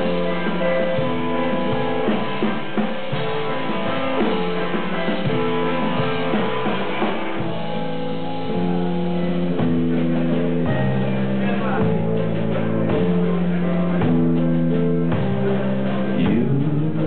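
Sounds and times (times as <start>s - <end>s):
drums: 0.0s - 17.0s
guitars holding sustained chords: 0.0s - 17.0s.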